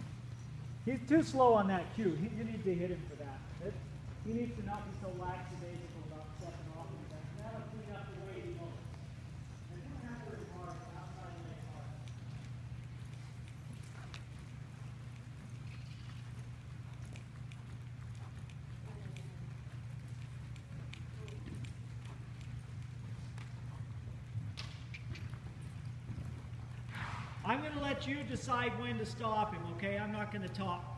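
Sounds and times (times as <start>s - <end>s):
horse hoofbeats on soft ground: 0.0s - 30.9s
steady low hum: 0.0s - 30.9s.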